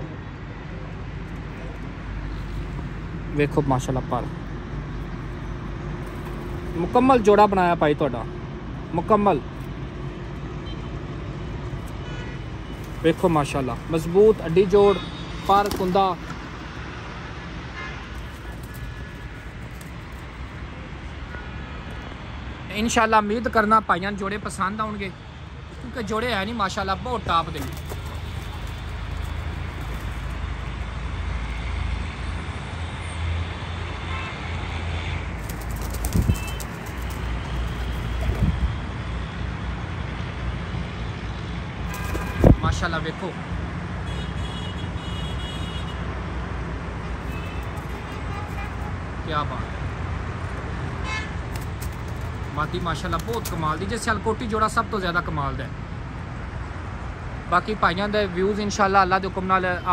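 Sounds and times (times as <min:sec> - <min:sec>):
distant road traffic hum: 0:00.0 - 0:59.9.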